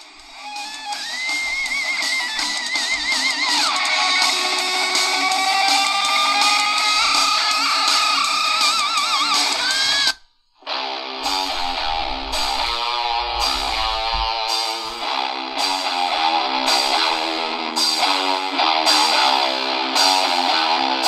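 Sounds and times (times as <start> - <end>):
music through small radio speaker: 0.0 - 21.0.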